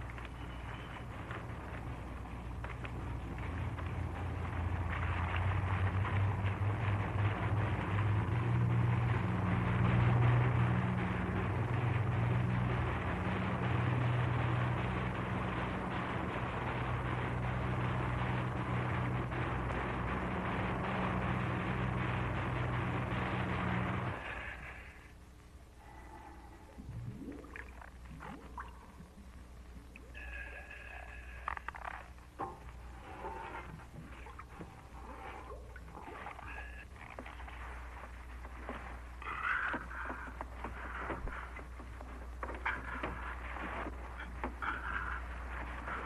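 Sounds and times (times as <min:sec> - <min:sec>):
water washing along hull: 0:00.0 - 0:25.2, 0:25.8 - 0:46.0
boat engines running: 0:00.0 - 0:46.0.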